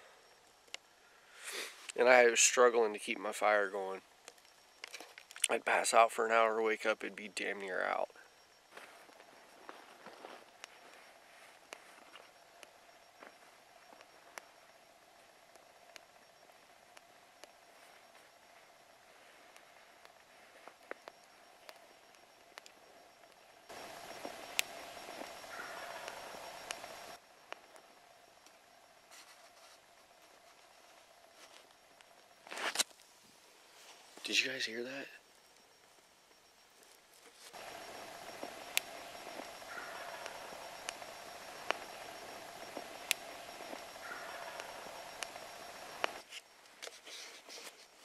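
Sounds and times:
campfire crackling: 0.0s - 48.0s
distant turkey gobbling: 23.7s - 27.2s, 37.6s - 46.2s.

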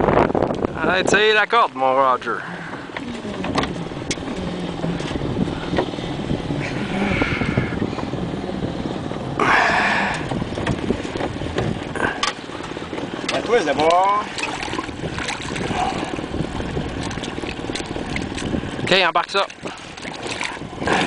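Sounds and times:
lake water around a boat: 0.0s - 21.0s
wind: 0.0s - 21.0s
light knocks against boat hull: 10.2s - 14.9s.

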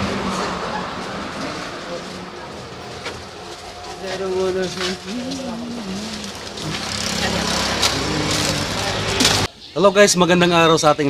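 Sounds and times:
vehicle engine rumbling: 0.0s - 9.5s
indistinct voices: 0.0s - 10.1s.

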